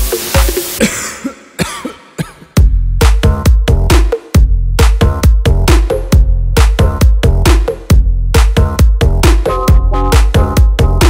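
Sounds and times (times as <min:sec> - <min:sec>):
electronic dance music: 0:00.0 - 0:00.9, 0:03.0 - 0:11.0
hiss: 0:00.0 - 0:00.9
kick-drum beat: 0:00.0 - 0:00.9, 0:02.6 - 0:11.0.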